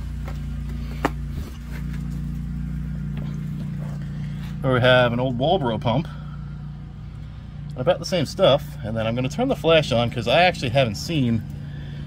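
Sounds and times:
low engine drone: 0.0 - 12.0.

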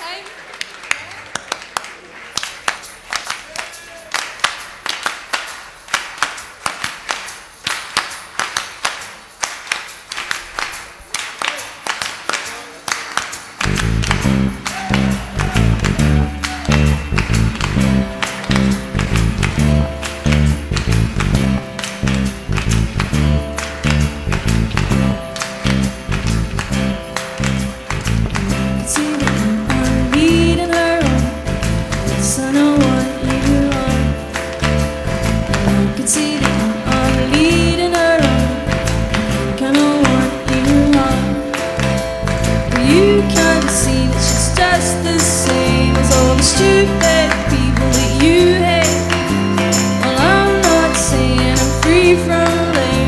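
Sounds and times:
hands clapping in unison: 0.0 - 53.0
indie-pop band playing: 13.6 - 53.0.

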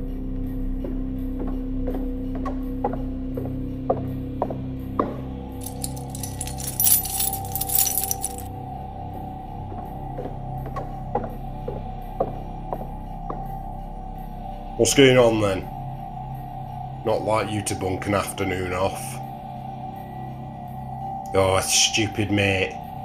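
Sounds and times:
slow background music: 0.0 - 23.0
keys jangling: 5.6 - 8.5.

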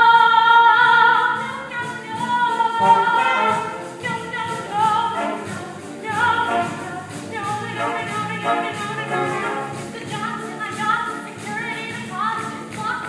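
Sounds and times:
chorus singing: 2.8 - 4.3, 5.0 - 9.8.

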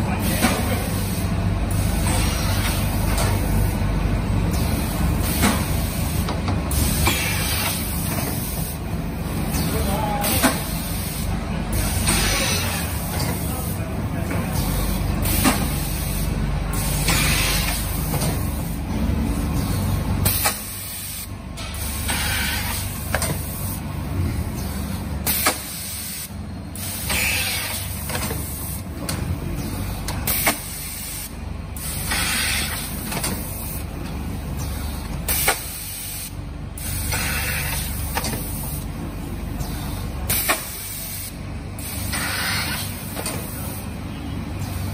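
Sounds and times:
packing machine running: 0.0 - 44.9
pneumatic air bursts hissing: 0.2 - 3.8, 4.5 - 8.8, 9.6 - 13.4, 15.2 - 18.4, 19.6 - 23.8, 24.6 - 28.8, 30.2 - 33.8, 34.6 - 38.8, 39.6 - 43.9.

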